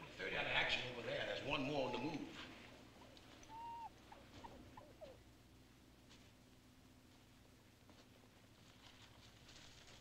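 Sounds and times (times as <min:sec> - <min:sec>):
jungle night ambience: 0:00.0 - 0:10.0
squeaky animal calls: 0:03.5 - 0:05.2.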